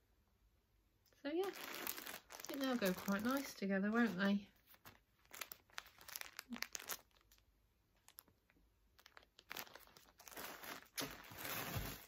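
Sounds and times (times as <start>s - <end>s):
plastic wrapping crinkling: 1.3s - 12.0s.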